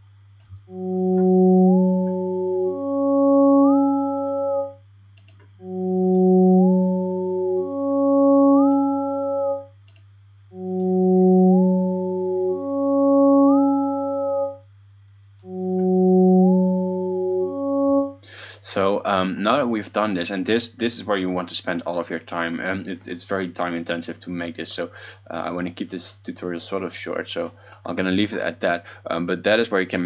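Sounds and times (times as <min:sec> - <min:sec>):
synth two-note phrase: 0:00.6 - 0:04.8, 0:05.6 - 0:09.8, 0:10.5 - 0:14.6, 0:15.4 - 0:18.3.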